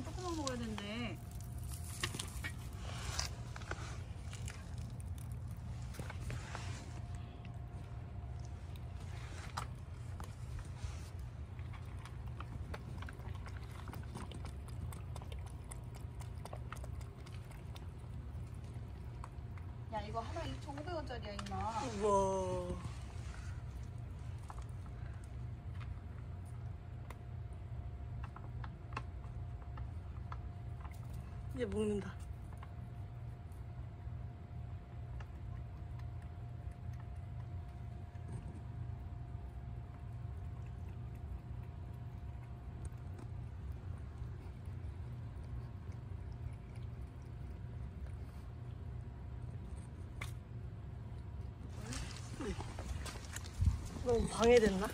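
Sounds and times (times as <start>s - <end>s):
steady low hum: 0.0s - 54.9s
steady low rumble: 0.0s - 54.9s
cat lapping milk: 0.1s - 21.6s, 22.8s - 31.5s, 32.2s - 54.9s.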